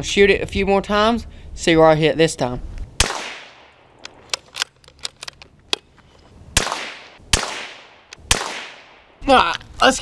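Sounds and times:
rifle shots echoing: 0:03.0 - 0:04.3, 0:06.6 - 0:09.2.

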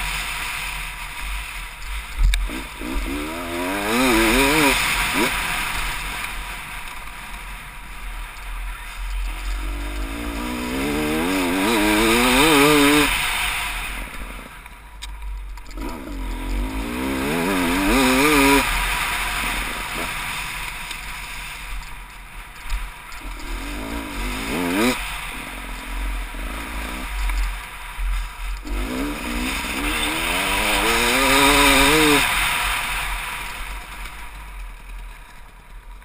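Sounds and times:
dirt bike engine revving: 0:00.0 - 0:14.7, 0:15.6 - 0:21.9, 0:22.8 - 0:34.6
wind and tyres rushing: 0:00.0 - 0:36.0.

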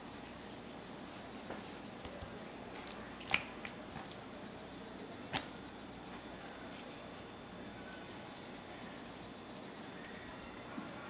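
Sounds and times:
low room hiss: 0:00.0 - 0:11.0.

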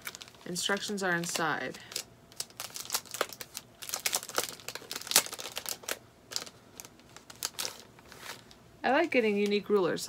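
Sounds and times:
plastic packaging crinkling: 0:00.0 - 0:09.8.

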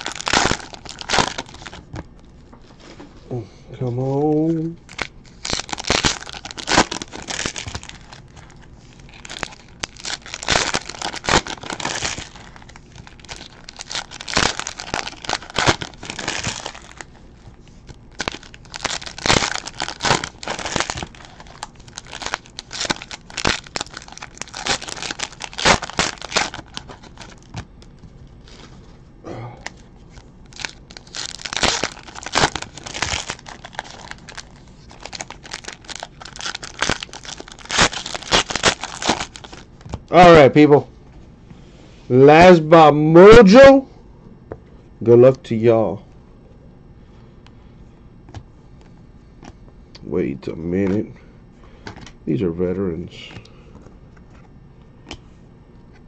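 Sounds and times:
plastic wrappers crinkling and tearing: 0:00.0 - 0:01.9, 0:04.3 - 0:28.8, 0:29.6 - 0:40.4.

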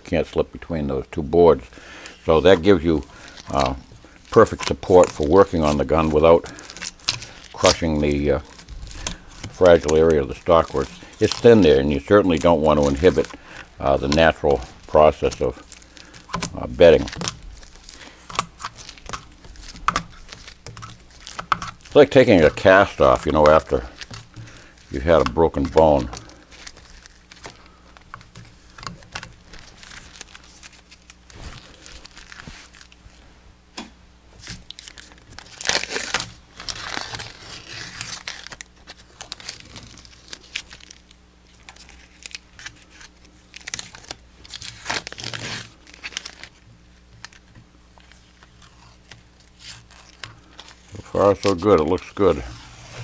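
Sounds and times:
tape peeling and crumpling: 0:01.5 - 0:33.3, 0:34.3 - 0:53.0.

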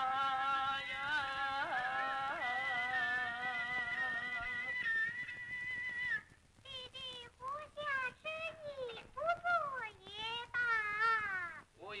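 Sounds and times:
high voice singing: 0:00.0 - 0:11.5.

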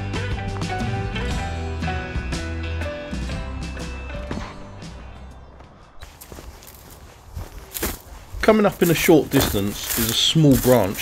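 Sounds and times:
background music: 0:00.0 - 0:06.9
footsteps on dirt path: 0:04.2 - 0:11.0.

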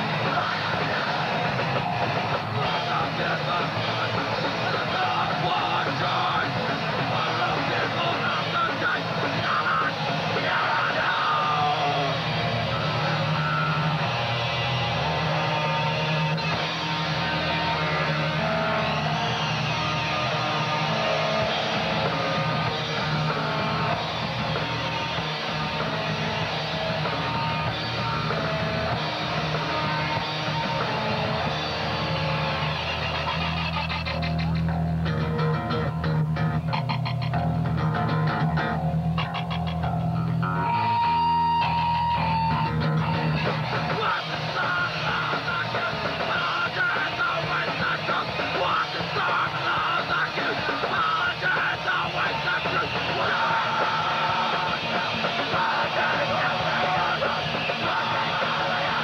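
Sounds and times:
punk band playing live: 0:00.0 - 0:59.0.

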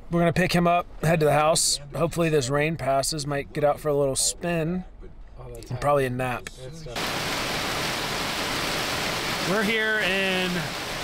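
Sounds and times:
hail clattering on car: 0:07.0 - 0:11.0.

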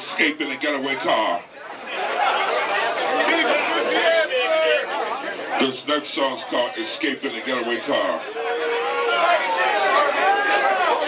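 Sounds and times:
voices talking over one another: 0:00.0 - 0:11.0.

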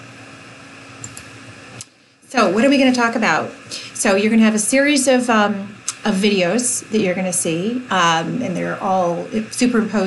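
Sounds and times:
fan-like hiss: 0:00.0 - 0:10.0
low electrical hum: 0:00.0 - 0:10.0
clicks: 0:01.0 - 0:01.9.

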